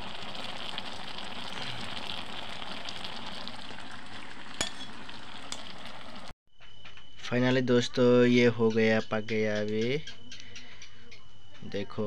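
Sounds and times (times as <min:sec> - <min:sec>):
beans bubbling and sizzling: 0:00.0 - 0:06.4.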